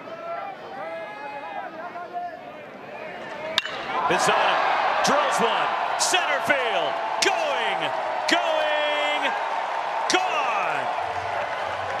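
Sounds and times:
voices calling out: 3.0 - 11.0
metal bat cracking ball: 3.3 - 4.2.

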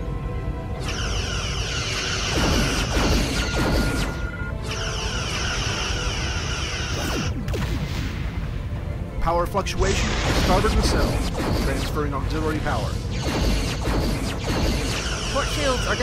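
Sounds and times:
dramatic music score: 0.0 - 16.0
warbling energy beams: 0.8 - 7.7, 9.8 - 16.0.

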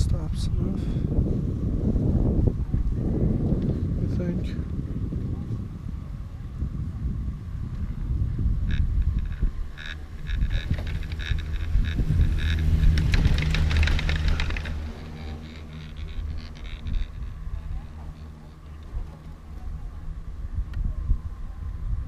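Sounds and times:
low rumble: 0.0 - 22.0
wind on microphone: 0.0 - 22.0
chairlift clicks and rattles: 8.6 - 19.6.

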